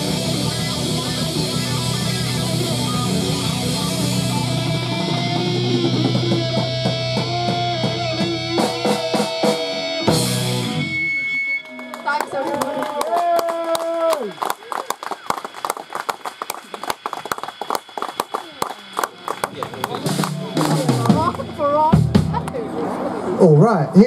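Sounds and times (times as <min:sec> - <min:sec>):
audience clapping: 0:11.5 - 0:21.5
people talking: 0:12.0 - 0:14.8, 0:18.3 - 0:24.0.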